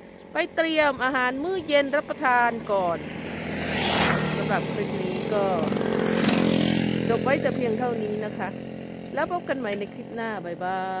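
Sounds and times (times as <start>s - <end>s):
engine running: 0.0s - 11.0s
woman speaking: 0.4s - 3.0s, 4.3s - 5.8s, 7.0s - 11.0s.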